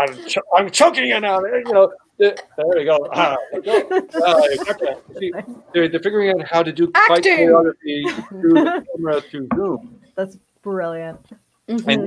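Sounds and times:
voices talking over one another: 0.0 - 10.0
people laughing: 2.6 - 6.3, 7.2 - 9.7
breathy hiss: 3.5 - 5.0.

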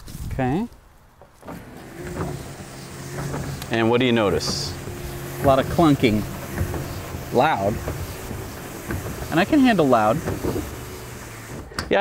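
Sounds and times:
cover mechanism clunking: 1.2 - 12.0
electric motor humming: 1.4 - 11.8.

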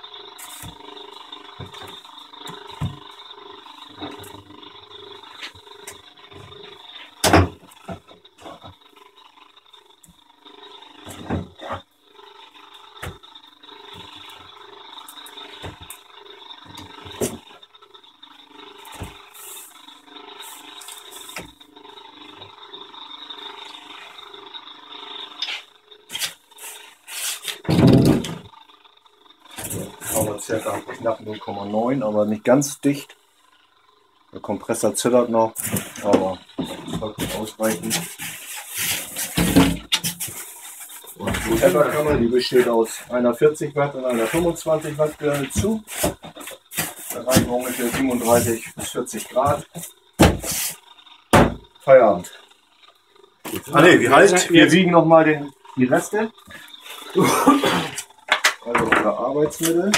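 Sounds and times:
vacuum pump pulsing hum: 0.0 - 59.9.

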